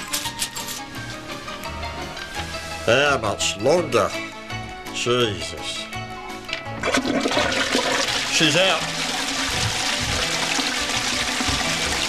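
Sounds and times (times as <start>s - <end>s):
toilet flushing: 6.8s - 12.0s.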